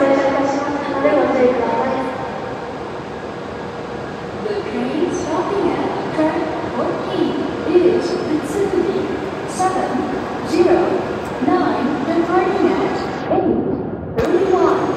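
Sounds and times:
woman's voice announcement echoing: 0.0 - 2.6, 4.4 - 13.5, 14.2 - 14.9
platform background noise: 0.0 - 14.9.

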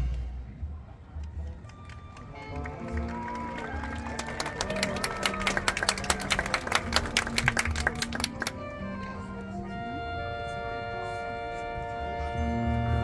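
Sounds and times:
marching band playing: 1.8 - 13.0.

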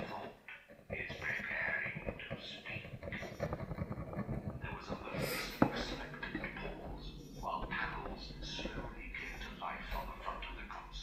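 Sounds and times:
person speaking indistinctly: 0.0 - 3.6, 4.3 - 11.0.

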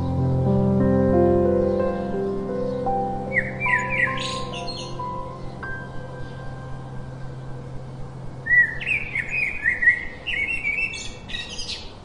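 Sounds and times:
sparrows chirping: 1.4 - 12.0.

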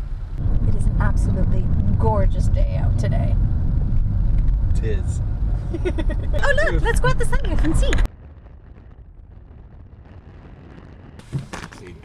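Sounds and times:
car road noise: 0.0 - 12.0
wind rumble on microphone: 0.0 - 12.0.

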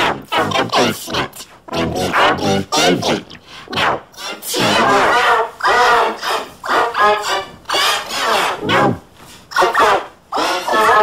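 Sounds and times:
pitch-shifted shouting voice: 0.0 - 11.0.

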